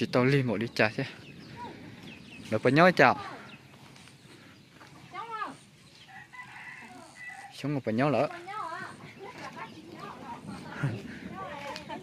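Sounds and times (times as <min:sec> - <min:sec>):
rooster crowing faintly: 0:06.1 - 0:07.6.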